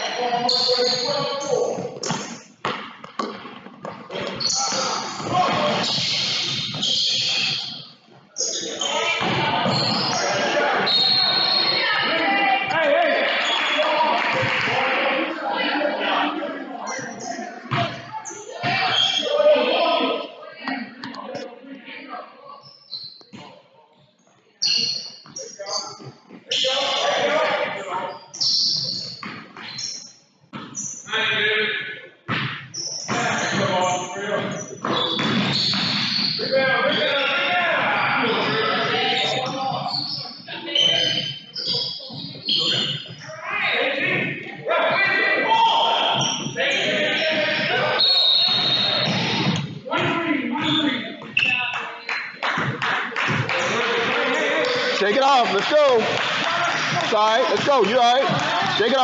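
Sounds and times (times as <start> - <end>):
echoing voices: 4.1 - 22.6, 36.4 - 59.0.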